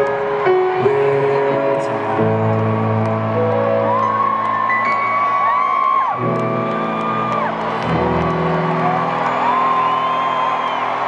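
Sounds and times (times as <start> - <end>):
crowd noise and whoops: 0.0 - 11.0
live concert music: 0.0 - 11.0.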